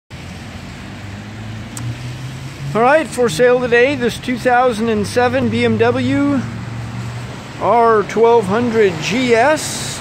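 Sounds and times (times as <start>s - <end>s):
vehicle engine running: 0.2s - 10.0s.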